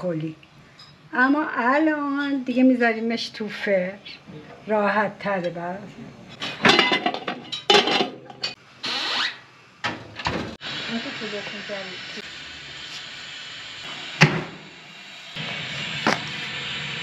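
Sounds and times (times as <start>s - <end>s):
gas oven hissing: 0.0s - 17.0s
metal lid clattering onto pot: 6.4s - 8.6s.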